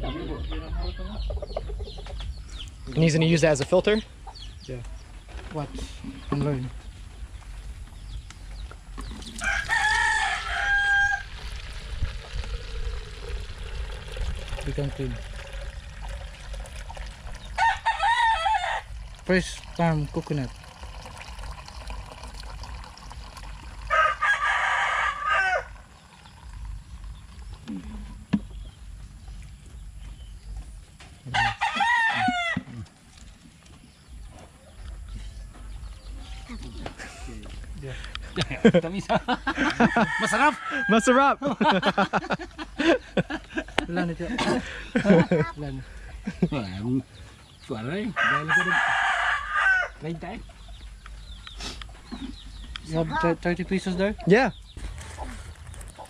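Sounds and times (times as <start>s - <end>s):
rooster crowing: 9.4s - 11.4s, 17.4s - 19.0s, 23.8s - 25.8s, 31.3s - 32.8s, 39.5s - 42.3s, 48.1s - 50.0s.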